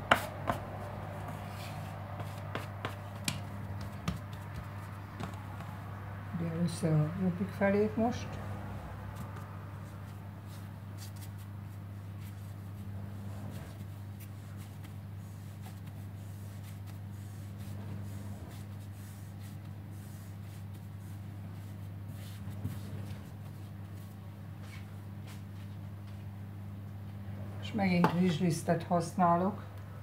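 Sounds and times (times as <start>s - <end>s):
hands rubbing dough: 0.0s - 6.1s, 9.0s - 25.9s
steady low hum: 0.0s - 30.0s.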